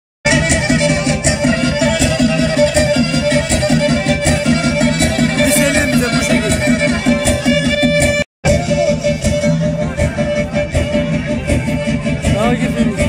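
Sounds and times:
folk music with bowed strings: 0.3s - 13.0s.

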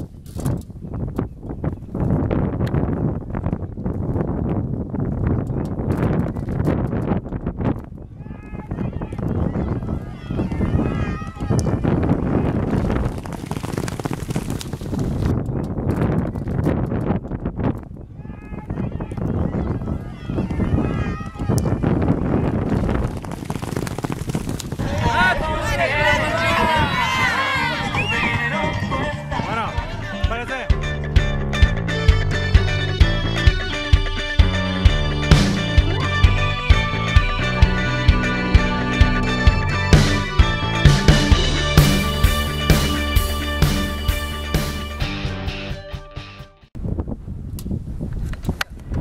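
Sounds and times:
wind noise on microphone: 0.0s - 30.4s, 46.7s - 49.0s
spectators' voices: 8.2s - 12.4s, 18.3s - 21.9s, 24.8s - 31.0s
horses galloping on dirt: 11.4s - 17.7s, 21.4s - 26.2s
galloping hoofbeats on dirt: 12.6s - 15.3s, 22.6s - 25.0s
melodic music: 27.3s - 46.6s.

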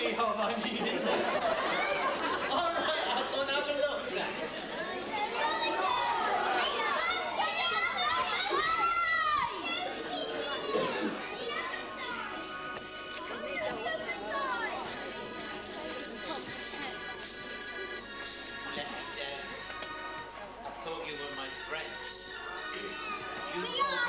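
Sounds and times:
steady musical tones: 0.0s - 24.0s
children shouting: 1.2s - 3.2s, 4.2s - 16.5s, 22.4s - 24.0s.

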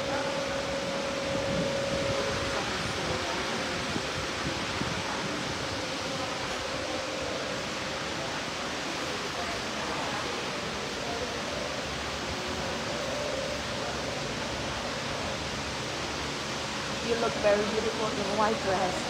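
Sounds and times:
electric fans rushing: 0.0s - 19.0s.

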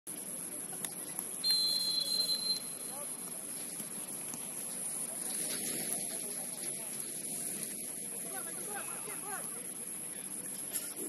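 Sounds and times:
referee's whistle blast: 1.4s - 2.9s.

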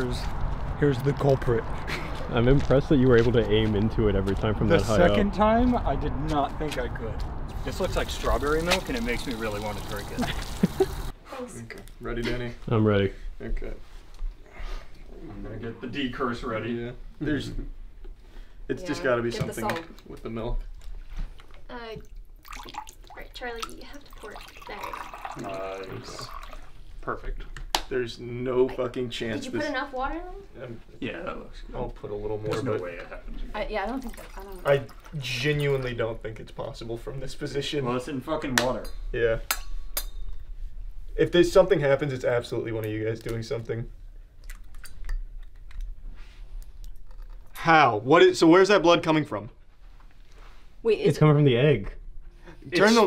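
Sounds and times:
water pouring into metal goblet: 7.5s - 11.1s, 22.0s - 26.9s, 33.9s - 36.2s.

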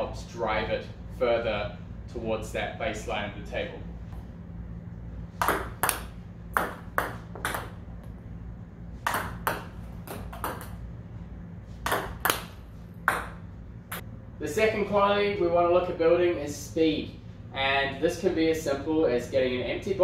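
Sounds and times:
steady low hum: 0.0s - 20.0s
ball bouncing on table: 5.4s - 7.8s, 9.0s - 10.8s, 11.8s - 14.0s
paddle striking table tennis ball: 5.4s - 7.8s, 9.0s - 10.8s, 11.8s - 14.0s.

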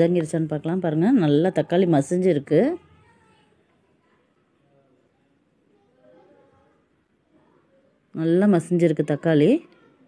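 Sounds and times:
woman speaking: 0.0s - 2.9s, 8.1s - 9.7s.

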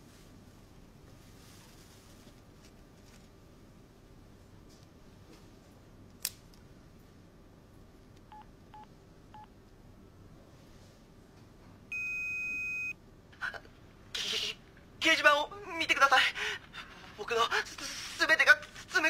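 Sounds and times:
loud steady electronic beep: 11.9s - 13.0s.

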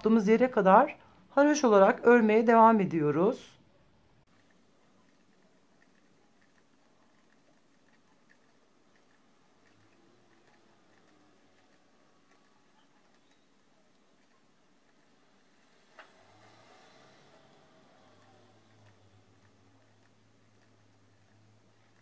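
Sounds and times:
knitting needles ticking: 4.3s - 16.3s, 17.2s - 22.0s.

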